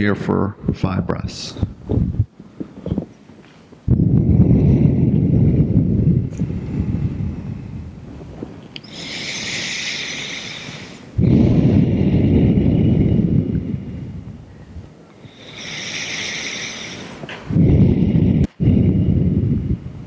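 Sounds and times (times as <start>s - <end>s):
deep breathing: 4.0s - 20.0s.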